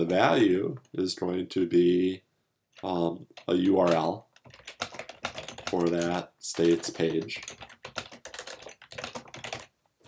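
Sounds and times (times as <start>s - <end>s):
computer keyboard typing: 2.8s - 9.7s.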